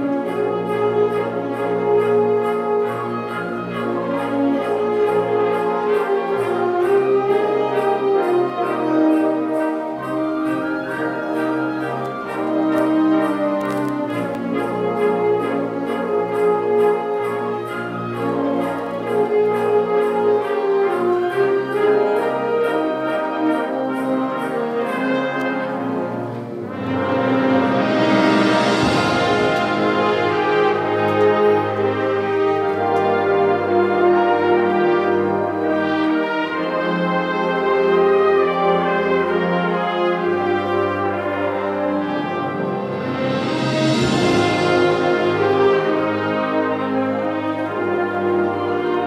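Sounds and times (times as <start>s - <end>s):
concert band playing: 0.0s - 49.0s.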